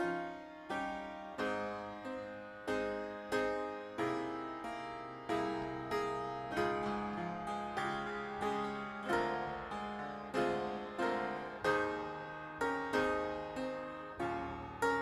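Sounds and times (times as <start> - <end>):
keyboard chords: 0.0 - 15.0.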